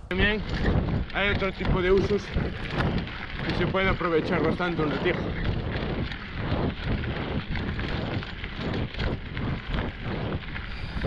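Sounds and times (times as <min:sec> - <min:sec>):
bike rattling over bumps: 0:00.0 - 0:11.0
tyres on loose dirt: 0:00.0 - 0:11.0
wind noise on microphone: 0:00.0 - 0:11.0.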